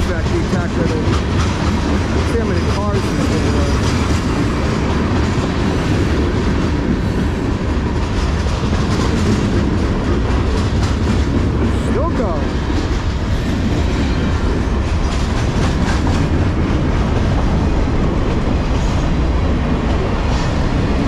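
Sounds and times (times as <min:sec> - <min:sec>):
freight train wheels rumbling: 0:00.0 - 0:21.0.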